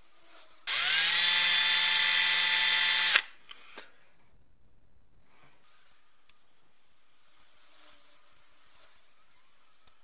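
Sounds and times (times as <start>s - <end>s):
electric power tool spinning: 0.2s - 3.4s.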